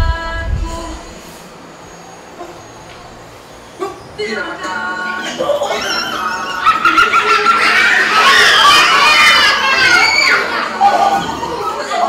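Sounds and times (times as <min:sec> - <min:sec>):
young children shouting: 0:05.2 - 0:12.0.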